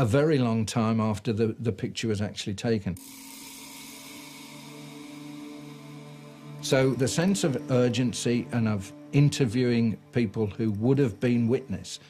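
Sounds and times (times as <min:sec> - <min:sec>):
sustained low tones: 0:03.4 - 0:11.5.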